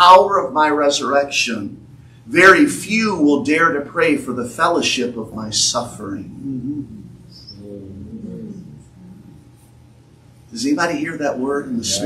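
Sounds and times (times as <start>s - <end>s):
person murmuring: 5.8s - 9.5s, 11.7s - 12.0s.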